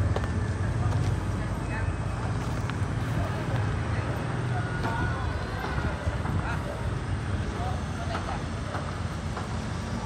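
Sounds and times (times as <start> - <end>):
distant voices: 0.0 - 10.0
low street rumble: 0.0 - 10.0.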